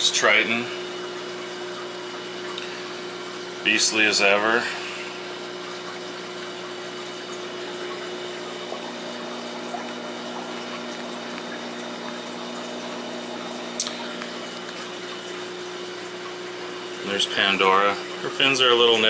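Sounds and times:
aquarium pumps humming: 0.0s - 19.0s.

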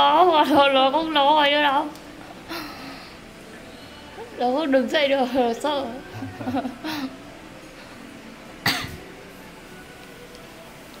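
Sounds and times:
person coughing: 8.7s - 9.0s.

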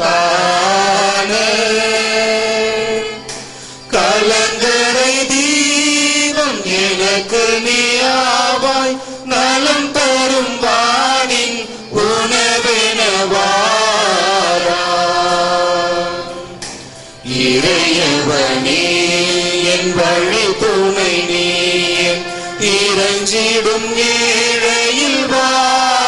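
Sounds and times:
person singing a hymn: 0.0s - 26.0s.

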